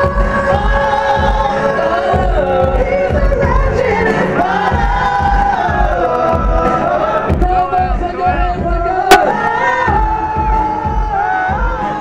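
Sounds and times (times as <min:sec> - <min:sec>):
pop music bass beat: 0:00.0 - 0:12.0.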